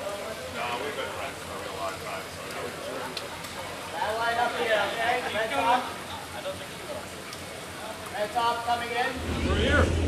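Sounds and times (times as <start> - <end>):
faint steady background noise: 0.0 - 10.0.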